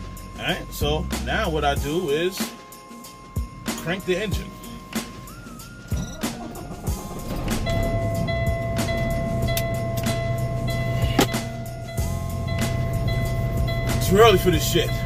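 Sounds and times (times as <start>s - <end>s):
diesel engine idling: 3.5s - 15.0s
diesel truck engine starting: 3.6s - 15.0s.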